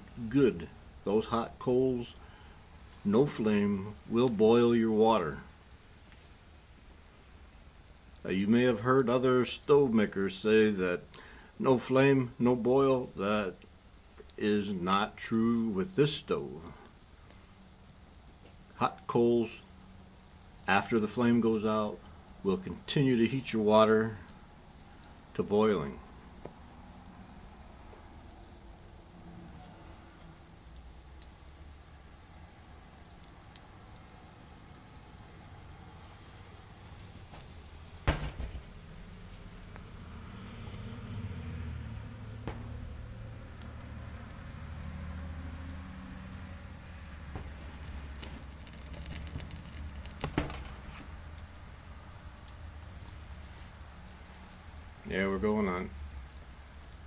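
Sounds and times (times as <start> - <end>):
sharp pops of burning coals: 0.0 - 4.7, 5.3 - 8.3, 11.0 - 11.6, 12.9 - 57.0
coals burning with hiss: 0.0 - 57.0.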